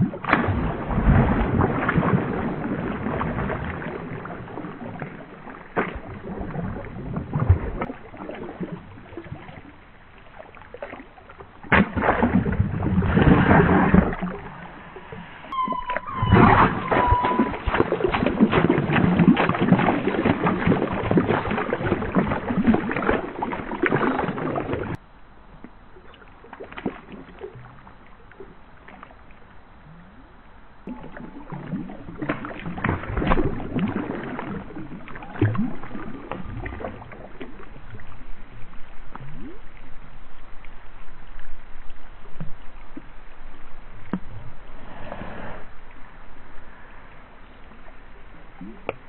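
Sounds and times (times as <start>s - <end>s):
water splashing and sloshing: 0.0s - 49.0s.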